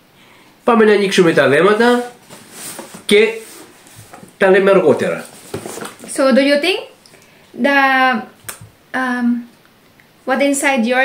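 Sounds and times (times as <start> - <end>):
person speaking: 0.6 - 7.0.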